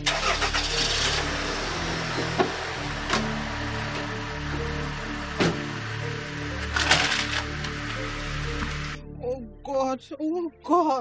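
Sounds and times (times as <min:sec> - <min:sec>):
car engine running loudly: 0:00.0 - 0:09.0
background music: 0:00.0 - 0:11.0.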